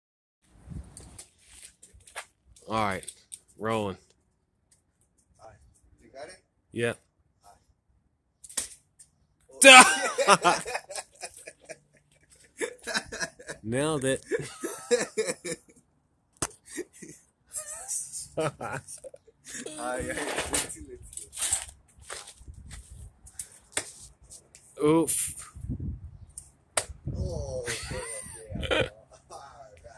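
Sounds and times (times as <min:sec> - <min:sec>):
people's voices: 0:09.6 - 0:11.6, 0:16.7 - 0:21.2.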